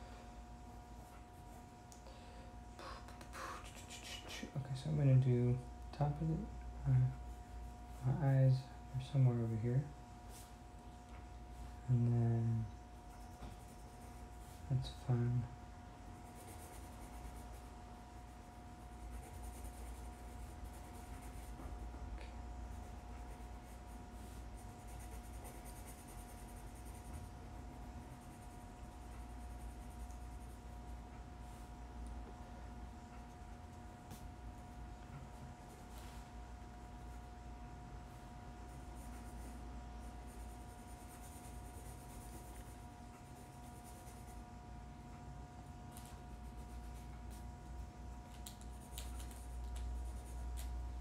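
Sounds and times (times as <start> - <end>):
steady electrical hum: 0.0 - 51.0
pencil scratching on paper: 13.0 - 15.0, 16.2 - 22.0, 22.6 - 31.7, 38.1 - 44.5, 45.9 - 47.8, 48.5 - 50.8.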